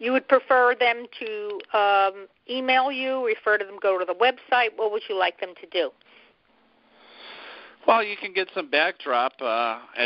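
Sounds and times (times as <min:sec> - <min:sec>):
breath in through nose: 0:07.0 - 0:07.8
person speaking: 0:07.3 - 0:10.0.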